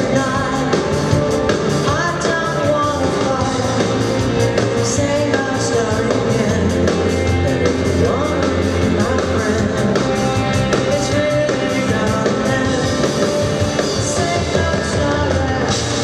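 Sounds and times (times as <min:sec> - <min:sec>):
live rock band playing: 0:00.0 - 0:16.0
woman singing lead: 0:00.0 - 0:16.0.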